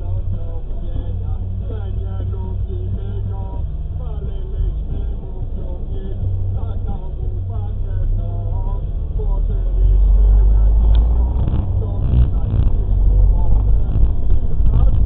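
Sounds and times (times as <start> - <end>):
vehicle engine pulling away: 0.0 - 15.0.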